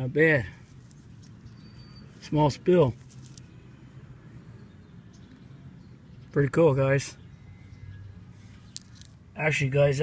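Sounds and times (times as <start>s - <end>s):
coins clinking in a hand: 3.0s - 3.5s.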